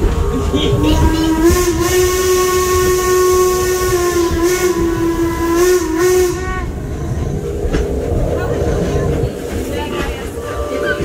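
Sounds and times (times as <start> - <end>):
steam locomotive whistle: 0.9 - 6.8.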